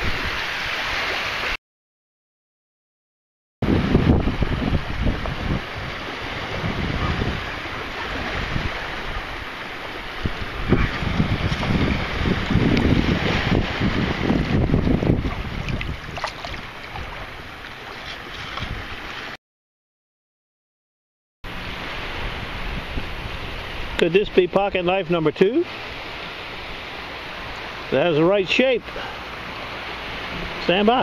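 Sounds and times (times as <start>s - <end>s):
surf washing along shoreline: 0.0s - 1.6s, 3.6s - 19.4s, 21.5s - 31.0s
wind buffeting microphone: 3.6s - 19.1s, 21.5s - 24.0s.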